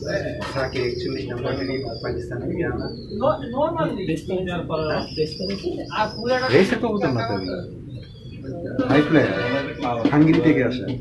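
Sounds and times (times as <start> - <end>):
man talking: 0.0 - 3.0, 6.0 - 7.8, 8.5 - 11.0
pigeons cooing: 0.0 - 11.0.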